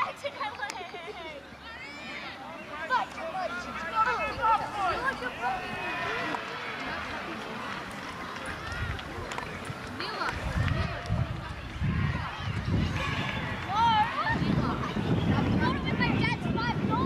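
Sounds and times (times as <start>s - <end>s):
distant shouts and calls: 1.4s - 17.0s.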